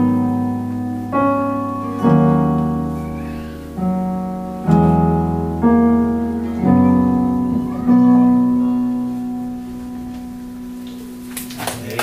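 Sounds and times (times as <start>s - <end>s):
keyboard and guitar chord ringing: 0.0s - 12.0s.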